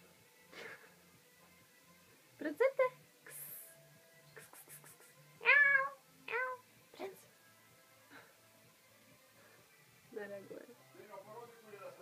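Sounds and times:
cat meowing: 5.4s - 6.7s.

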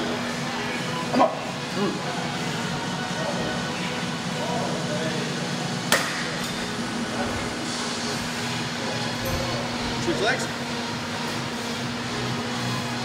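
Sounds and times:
room hum: 0.0s - 13.0s.

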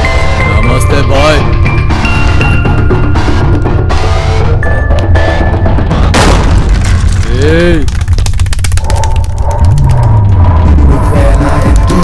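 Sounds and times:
deep rumble: 2.5s - 12.0s
rapid clicks: 6.7s - 12.0s.

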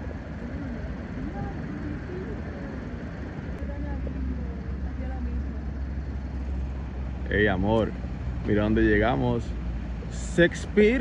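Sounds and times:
faint voices: 0.0s - 6.3s
distant road traffic rumble: 0.0s - 11.0s.

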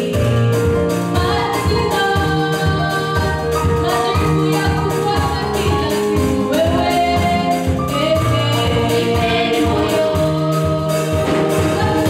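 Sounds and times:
steady percussion beat: 0.0s - 12.0s
girls singing gospel: 1.0s - 12.0s.

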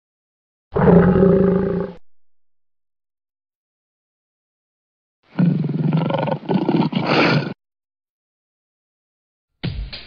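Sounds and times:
lion roaring: 0.8s - 2.0s.

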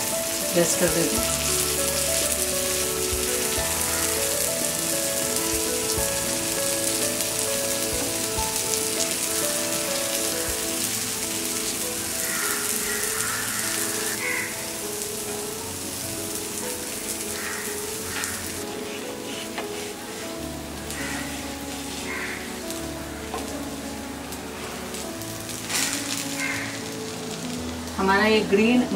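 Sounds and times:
background music with held notes: 0.0s - 28.9s
oil sizzling and crackling: 0.0s - 28.9s.

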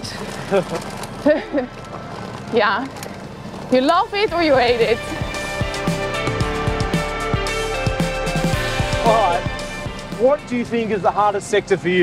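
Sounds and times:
laughter: 1.2s - 1.8s.

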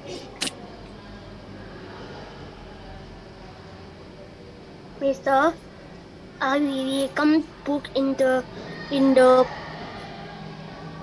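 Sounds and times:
low call line background noise: 0.0s - 11.0s.

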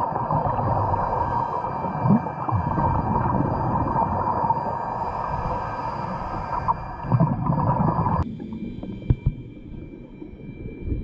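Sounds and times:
muffled underwater hum: 0.0s - 11.0s
underwater bubbling: 0.0s - 11.0s.

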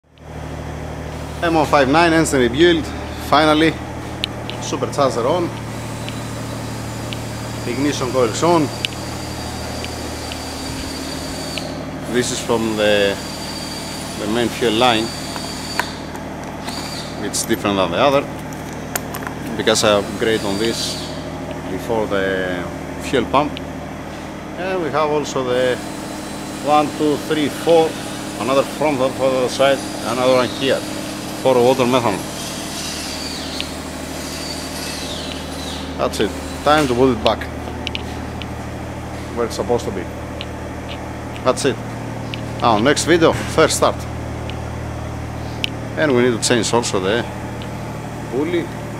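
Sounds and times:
mechanical hum and hiss: 0.1s - 48.9s.

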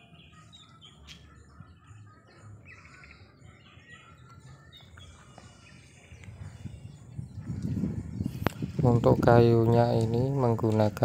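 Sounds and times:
faint bird chirps: 0.0s - 9.1s
bird trill: 0.0s - 11.0s.

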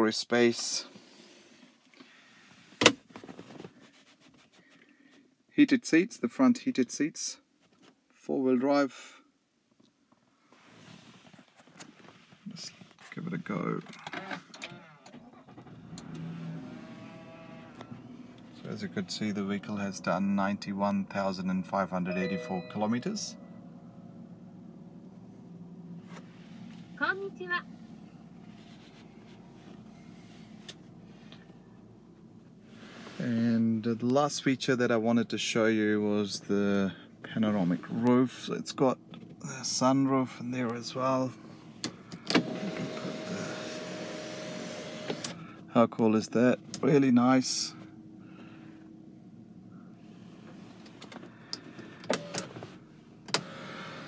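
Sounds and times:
car engine idling: 15.3s - 33.0s
sunroof motor humming: 23.0s - 33.1s, 41.4s - 45.6s, 48.1s - 54.0s.

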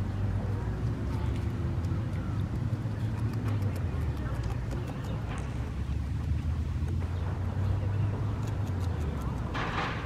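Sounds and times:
beaver chewing grass: 0.0s - 9.9s
road traffic rumble: 0.0s - 10.0s.

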